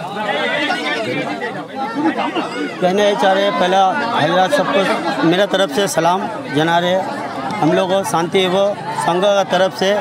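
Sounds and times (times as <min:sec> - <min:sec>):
men chattering: 0:00.0 - 0:10.0.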